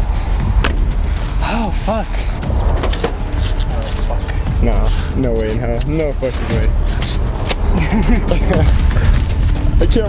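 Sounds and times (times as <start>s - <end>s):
low microphone rumble: 0.0s - 10.0s
men laughing: 6.7s - 9.8s.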